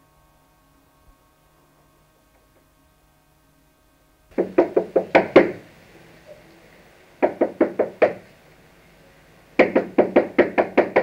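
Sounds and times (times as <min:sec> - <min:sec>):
knocking on a door: 0:04.3 - 0:05.6, 0:07.2 - 0:08.2, 0:09.6 - 0:11.0.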